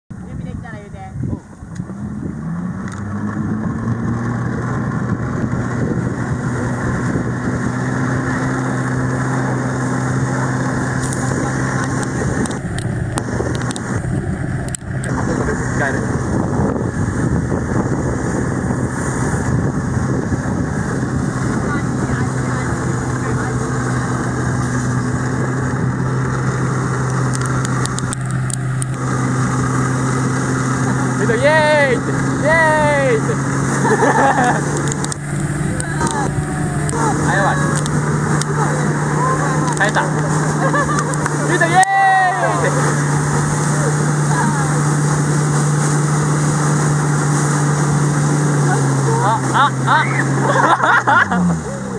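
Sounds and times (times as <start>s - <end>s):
jet ski engine revving: 0.2s - 51.9s
water jets hissing: 7.9s - 16.4s, 20.3s - 51.9s.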